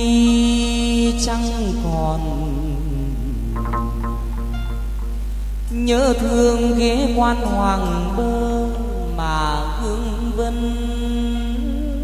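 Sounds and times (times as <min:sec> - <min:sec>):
sustained instrumental accompaniment: 0:00.0 - 0:06.8
man singing long bending notes: 0:00.0 - 0:12.0.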